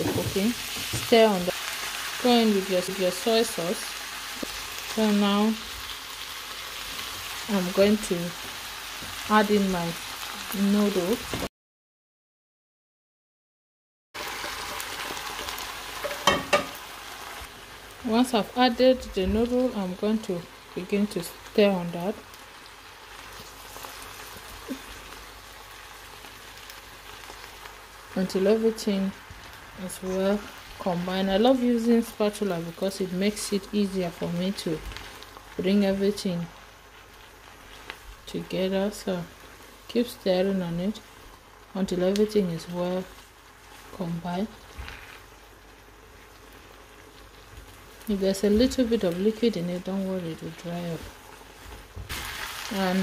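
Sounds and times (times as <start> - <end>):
food sizzling in a wok: 0.0 - 11.5, 14.2 - 53.0.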